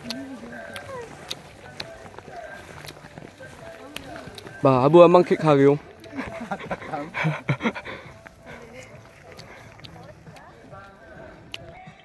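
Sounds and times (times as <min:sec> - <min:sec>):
indistinct voices: 0:00.0 - 0:12.0
breathy puffs: 0:06.0 - 0:10.0.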